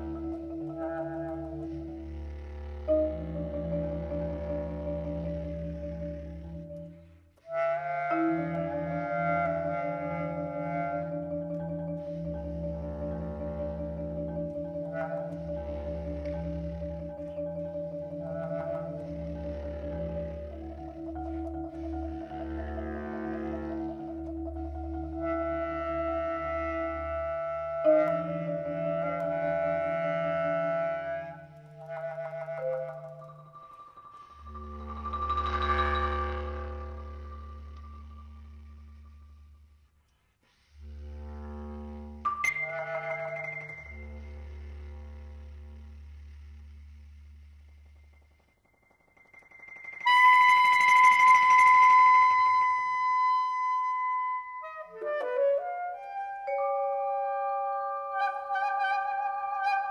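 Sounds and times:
instrumental music with clarinet: 0.0 - 59.9
low steady tone: 8.2 - 30.8, 31.4 - 40.0, 40.8 - 54.5.

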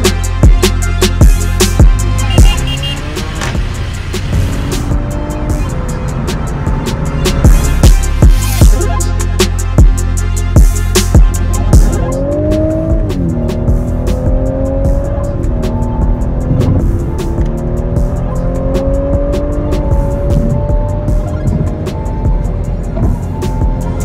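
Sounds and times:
music with a steady beat: 0.0 - 24.0
car engine accelerating: 1.2 - 8.8, 11.2 - 24.0.

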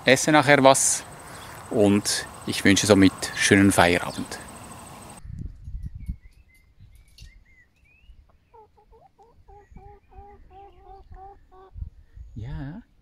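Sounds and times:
faint bird chirps: 1.2 - 12.7
hen clucking: 8.3 - 11.8.

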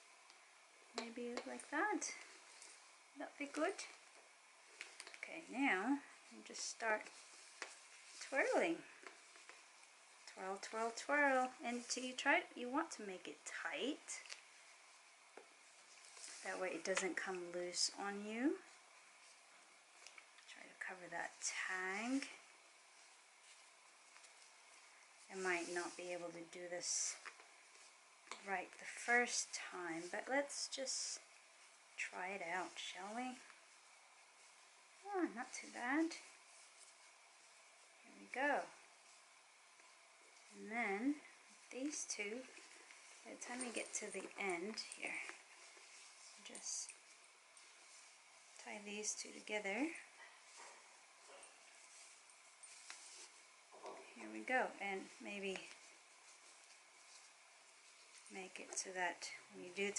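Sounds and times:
faint rustling of scarf: 0.0 - 59.9.

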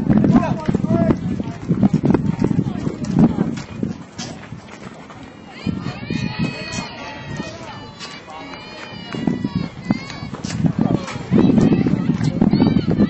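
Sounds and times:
players and onlookers calling out: 5.2 - 13.0.

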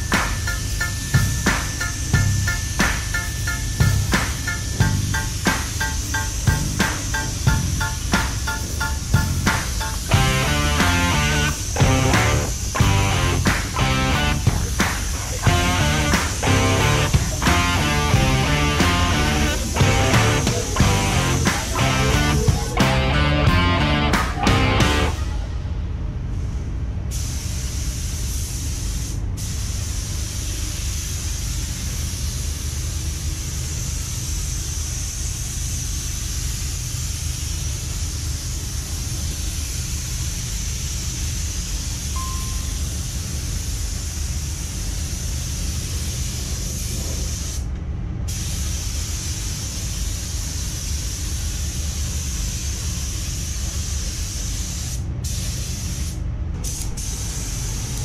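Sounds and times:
paint spray gun hissing: 0.0 - 25.1, 48.3 - 58.0.

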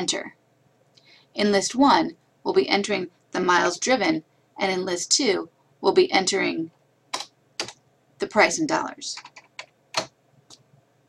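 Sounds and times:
keyboard keystrokes: 7.1 - 7.8, 9.2 - 10.1.

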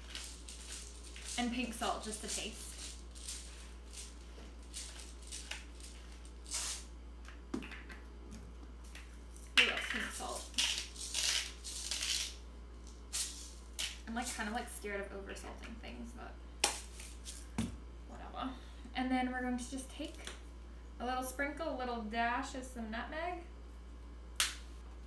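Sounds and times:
spice grinder crunching: 0.0 - 6.9, 9.4 - 14.0.

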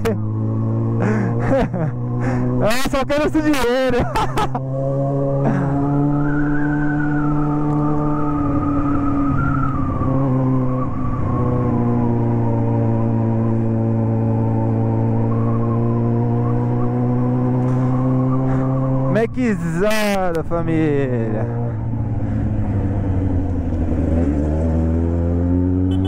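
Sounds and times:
motorcycle engine cruising: 0.0 - 26.0.

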